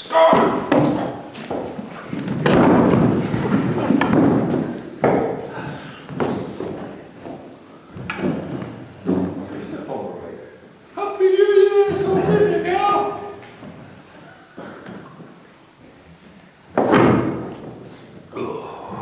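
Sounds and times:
loud thumps and knocks: 0.2s - 5.4s, 16.8s - 17.9s.

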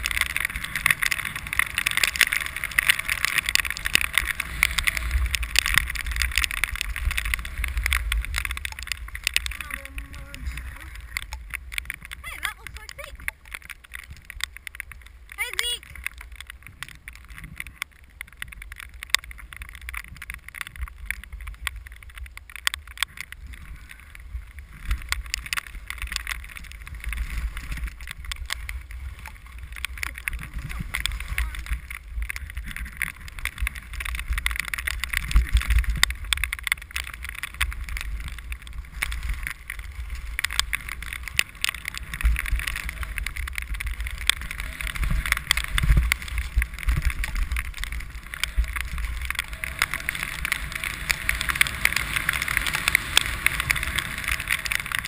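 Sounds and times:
wind rumbling on microphone: 0.0s - 55.0s
skis hissing and scraping on snow: 37.6s - 55.0s.

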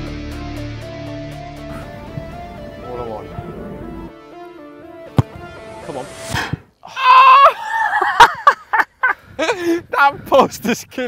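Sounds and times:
guitar music: 0.0s - 6.0s
football being kicked: 5.1s - 5.5s.

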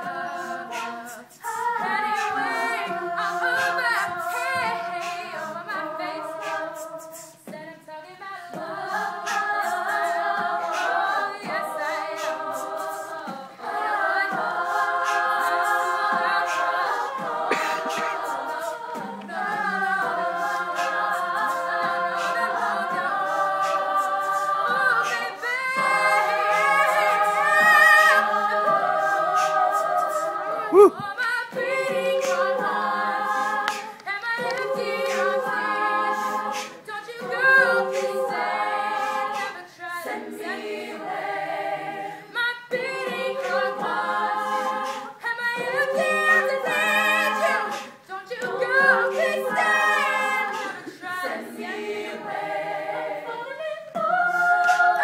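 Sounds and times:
beatboxed clicks: 0.0s - 40.2s, 42.3s - 52.1s, 53.9s - 55.0s
women singing in harmony: 0.0s - 55.0s
lead vocalist singing: 30.5s - 38.2s
shouted woo: 30.7s - 31.0s.

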